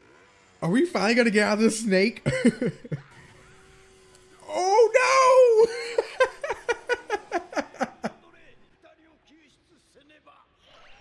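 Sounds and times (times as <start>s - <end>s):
man laughing: 1.4s - 3.2s, 4.5s - 8.2s.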